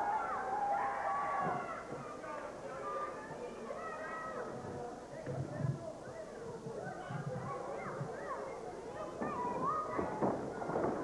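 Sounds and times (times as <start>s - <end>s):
spectators shouting high-pitched calls: 0.0s - 2.2s.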